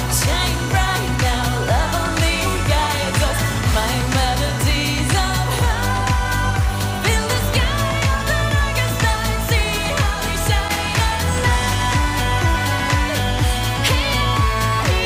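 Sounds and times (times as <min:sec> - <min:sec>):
live pop song: 0:00.0 - 0:15.0
steady drum beat: 0:00.0 - 0:15.0
woman singing wordless melody: 0:00.0 - 0:15.0.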